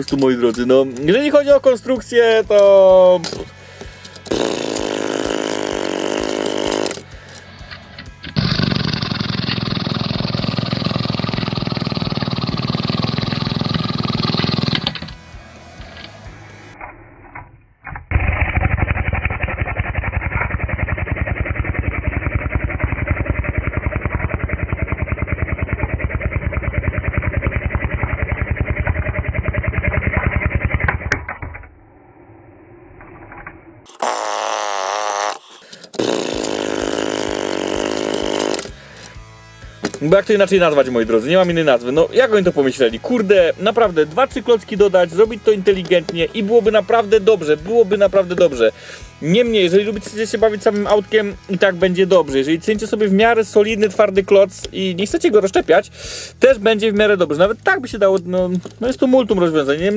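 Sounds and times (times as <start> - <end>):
music: 0.1 - 8.8, 14.8 - 16.8, 36.0 - 59.9
fast even pulse: 4.0 - 7.1, 18.1 - 31.1, 31.7 - 58.5.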